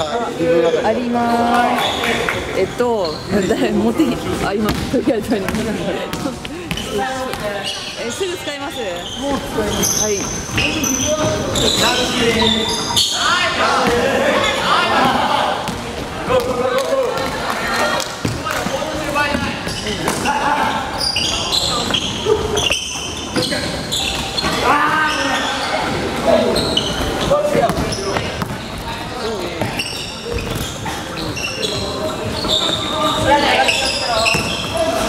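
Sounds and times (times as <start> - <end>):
players calling out: 0.0 - 35.0
sneakers squeaking: 0.0 - 35.0.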